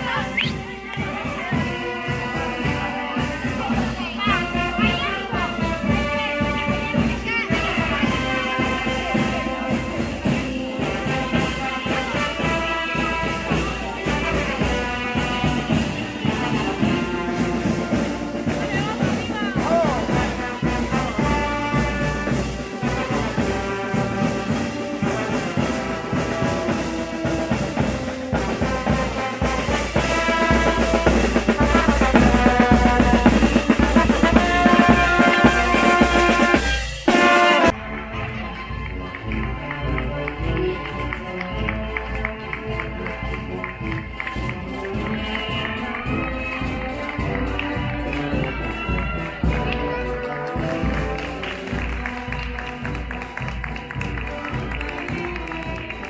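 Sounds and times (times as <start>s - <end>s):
snare and bass drums: 0.0s - 37.8s
brass melody: 0.0s - 56.0s.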